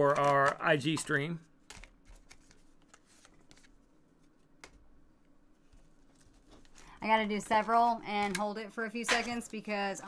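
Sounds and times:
trading cards clicking and rustling: 0.0 - 3.8.

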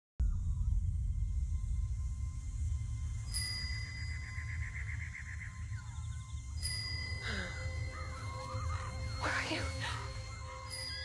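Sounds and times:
low rumbling drone: 0.2 - 11.0
high ringing tones: 0.4 - 11.0.

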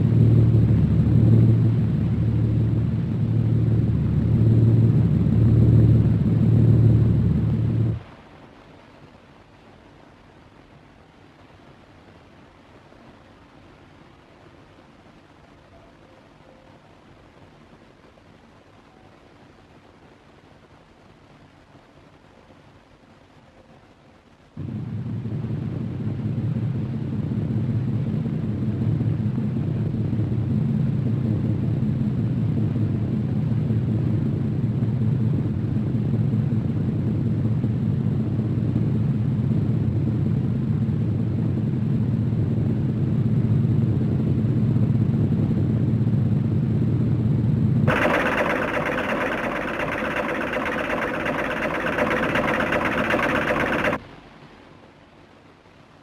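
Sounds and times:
airship engines droning: 47.9 - 54.0.

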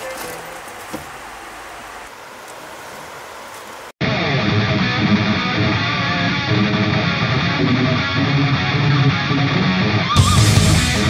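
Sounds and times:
strummed guitar music: 4.0 - 11.0.

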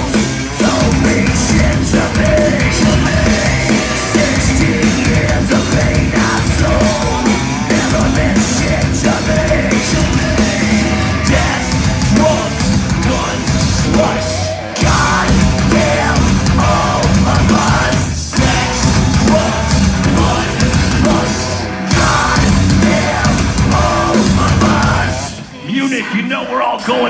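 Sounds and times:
heavy metal band playing live: 0.0 - 27.0.

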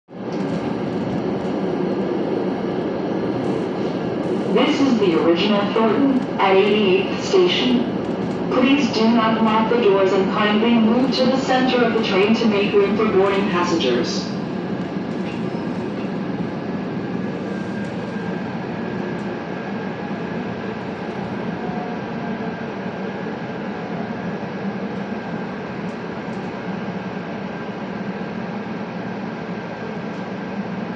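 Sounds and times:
electric train rumbling on track: 0.1 - 30.9.

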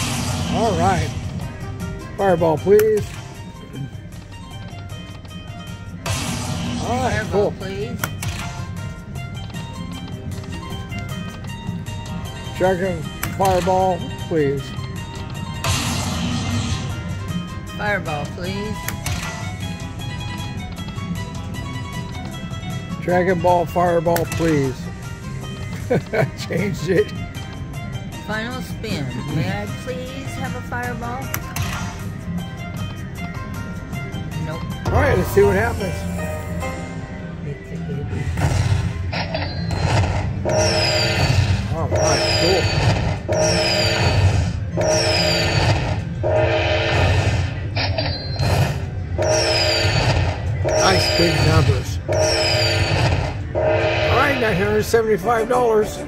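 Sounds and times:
low casino hum: 0.0 - 56.0
slot machine bonus music: 0.0 - 56.0
slot machine chime with falling chirp: 39.2 - 55.0.

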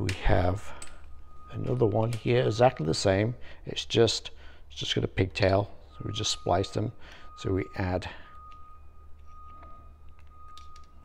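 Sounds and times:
wires clicking and rustling: 0.0 - 3.1, 8.3 - 11.0
faint steady high tone: 0.0 - 11.0
low hum: 0.0 - 11.0.

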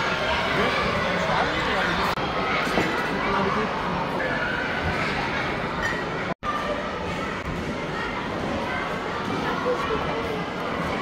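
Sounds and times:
overlapping chatter of people: 0.0 - 11.0.

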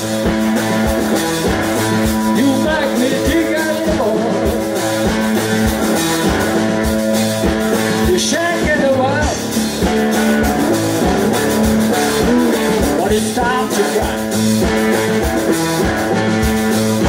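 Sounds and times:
bass guitar: 0.0 - 17.0
drum kit steady beat: 0.0 - 17.0
electric guitar: 0.0 - 17.0.

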